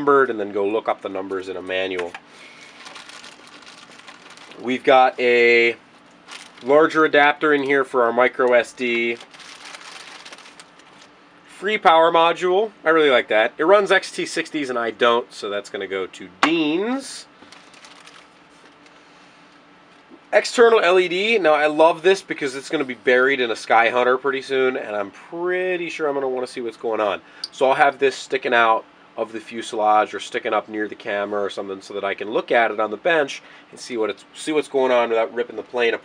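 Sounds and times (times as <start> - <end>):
plastic bag crinkling: 2.3 - 5.2, 5.9 - 11.1, 17.4 - 19.0.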